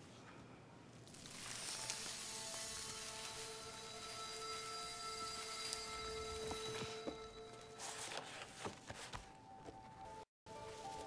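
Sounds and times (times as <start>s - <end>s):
high sparkling haze: 1.0s - 7.8s
shimmering magic tones: 1.1s - 7.8s.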